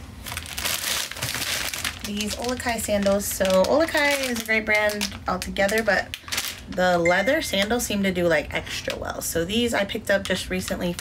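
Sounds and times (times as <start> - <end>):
plastic bags crinkling: 0.0 - 8.0.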